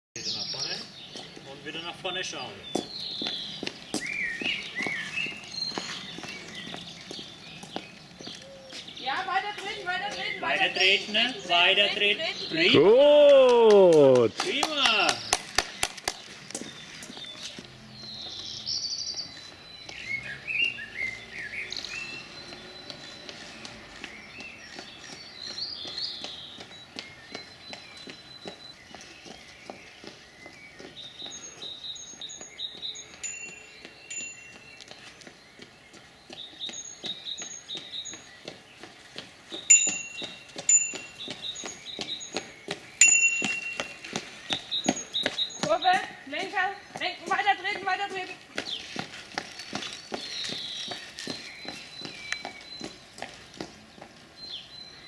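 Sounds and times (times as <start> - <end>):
songbirds chirping: 0.2 - 55.0.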